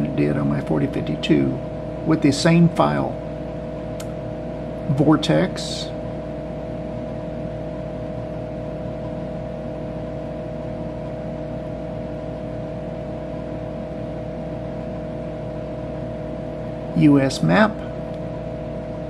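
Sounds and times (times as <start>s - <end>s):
background whir: 0.0s - 19.0s
computer humming: 0.0s - 19.0s.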